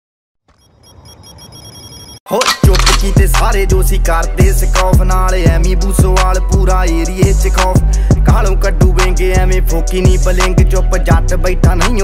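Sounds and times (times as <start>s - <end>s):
pulsing electronic ringing: 0.5s - 2.2s.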